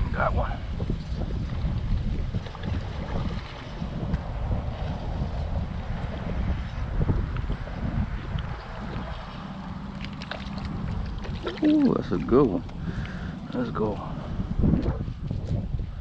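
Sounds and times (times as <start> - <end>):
wind rumbling on microphone: 0.0 - 16.0
fish splashing at water surface: 9.8 - 13.4.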